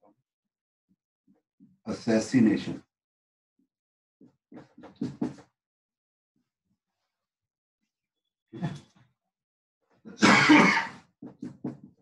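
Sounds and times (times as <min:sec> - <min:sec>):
man coughing: 0:10.2 - 0:10.9.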